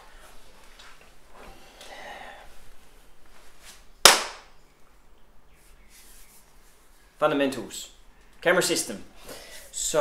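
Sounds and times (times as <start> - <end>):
sharp hand clap with room echo: 4.0 - 4.5.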